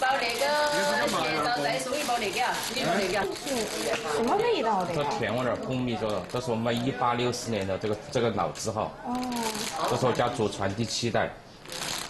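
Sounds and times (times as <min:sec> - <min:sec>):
plastic bag crinkling: 0:00.0 - 0:07.0, 0:08.6 - 0:10.3, 0:11.6 - 0:12.0.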